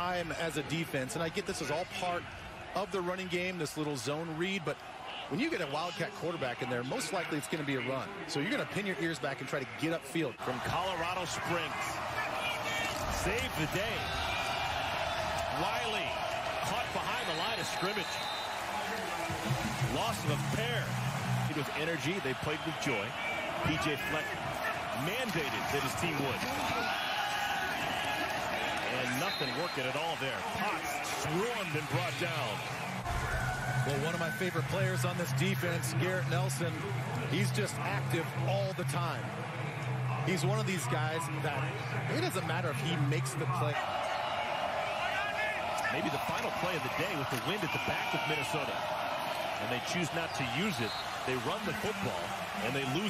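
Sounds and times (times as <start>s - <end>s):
stadium ambience hiss: 0.0s - 53.0s.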